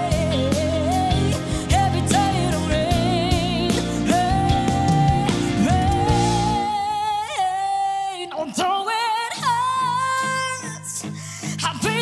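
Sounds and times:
live band playing: 0.0s - 7.2s.

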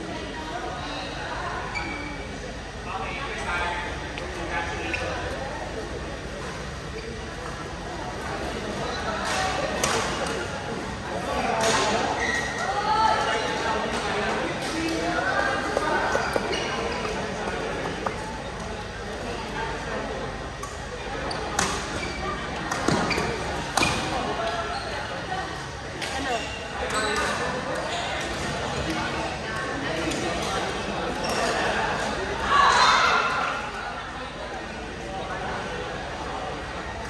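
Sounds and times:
players and spectators chattering: 0.0s - 37.0s.

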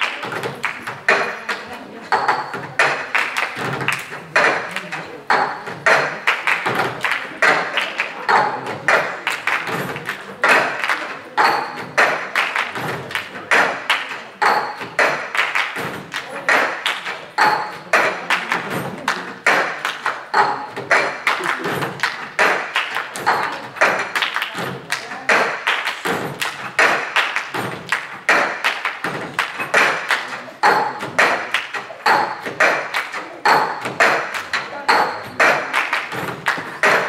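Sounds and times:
cups tapping on tabletops: 0.0s - 12.4s
people clapping hands: 0.0s - 37.0s.

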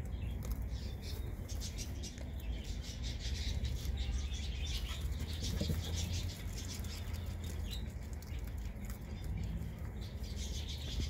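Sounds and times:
rabbits crunching and chewing: 0.0s - 11.0s
rustling of straw: 0.0s - 11.0s.

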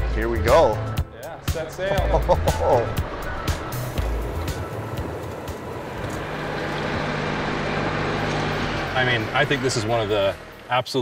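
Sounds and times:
steady low drone: 0.0s - 10.9s
tractor engine running: 0.0s - 11.0s.

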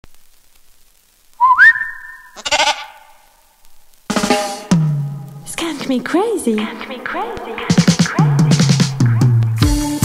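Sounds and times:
goat bleating: 2.4s - 3.2s.

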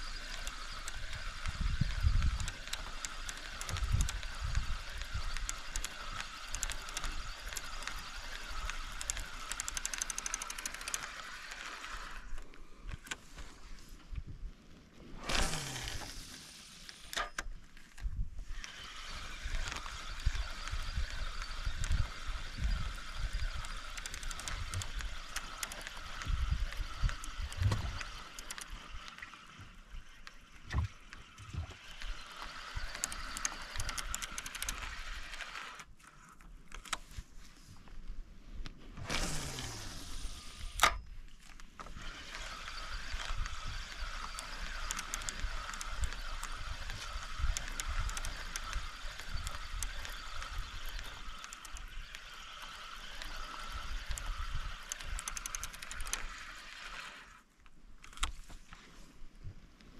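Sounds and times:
high buzzing with clicks: 0.0s - 13.2s, 18.5s - 36.0s, 39.1s - 57.4s.

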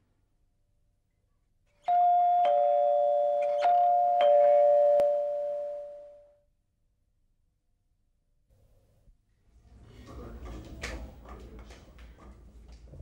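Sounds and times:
doorbell chime ringing: 1.8s - 6.3s.

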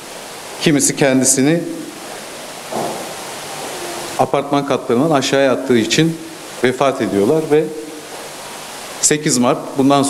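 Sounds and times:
steady recording hiss: 0.0s - 10.0s.

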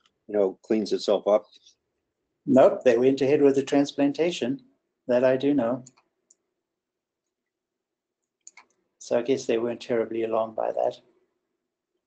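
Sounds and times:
faint clicks: 8.2s - 8.8s.

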